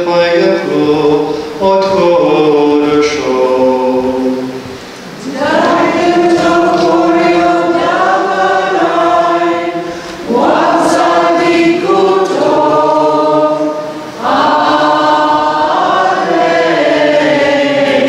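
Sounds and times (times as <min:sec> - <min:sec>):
voices singing a hymn: 0:00.0 - 0:18.0.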